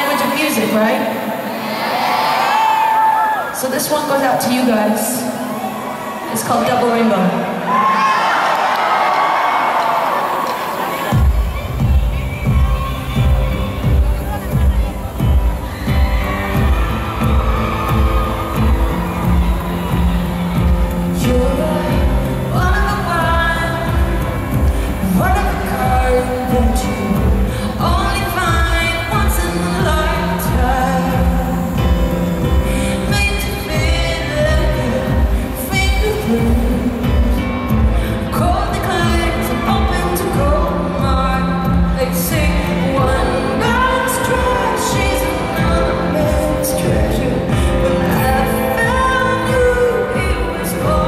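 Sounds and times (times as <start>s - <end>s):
arena crowd cheering and screaming: 0.0s - 51.0s
live pop band playing slow song: 10.6s - 51.0s
deep steady drum thumps: 11.1s - 43.2s.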